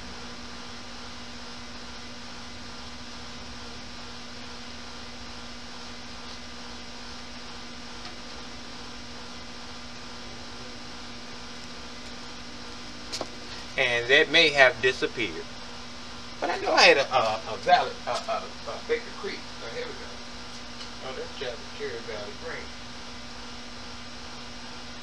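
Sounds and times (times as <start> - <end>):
steady machine hum: 0.0 - 25.0.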